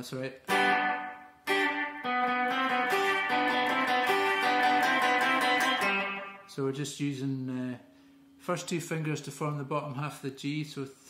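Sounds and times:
electric guitar playing rock and roll: 0:00.5 - 0:06.5.

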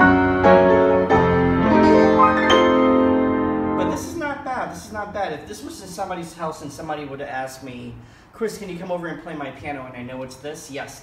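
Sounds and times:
upright piano chords: 0:00.0 - 0:04.6.

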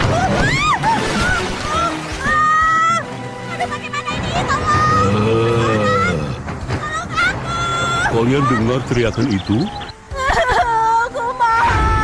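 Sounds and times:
drawn-out voiced groan: 0:05.0 - 0:06.4.

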